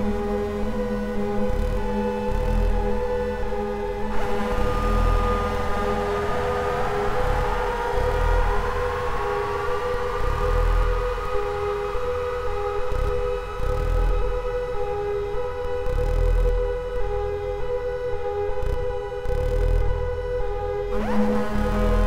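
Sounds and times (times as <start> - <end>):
synthesizer drone tones: 1.4 - 18.0
slow low pulse: 1.7 - 18.1.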